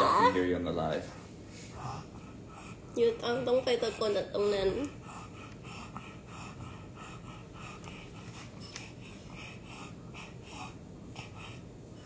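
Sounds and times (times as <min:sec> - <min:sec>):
dog panting: 0:01.0 - 0:12.0.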